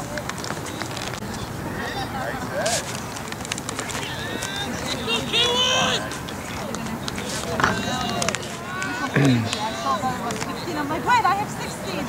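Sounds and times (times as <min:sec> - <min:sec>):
people calling across a field: 0:00.0 - 0:12.0.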